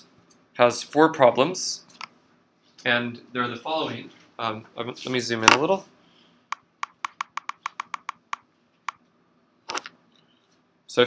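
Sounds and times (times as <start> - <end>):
sharp computer mouse clicks: 6.5 - 9.0.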